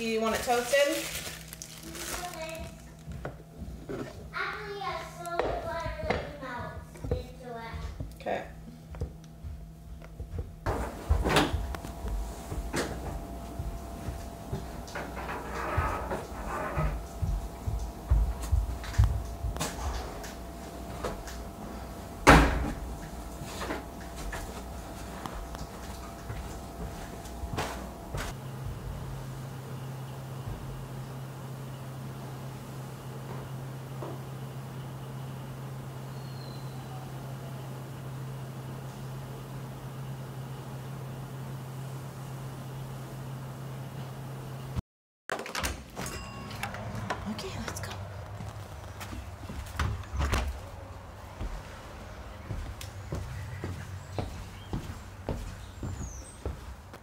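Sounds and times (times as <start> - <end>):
plastic bag crinkling: 0.1 - 3.1
young child talking: 1.8 - 2.9, 4.3 - 8.0.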